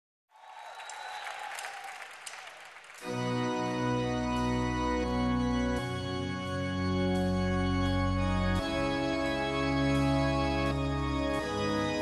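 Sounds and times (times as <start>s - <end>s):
audience applause: 0.3s - 3.2s
sharp claps: 0.4s - 3.2s.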